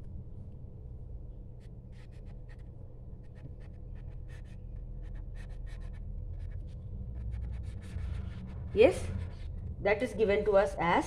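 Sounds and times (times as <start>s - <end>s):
steady low hum: 0.0s - 11.0s
marker pen writing on paper: 1.6s - 9.5s.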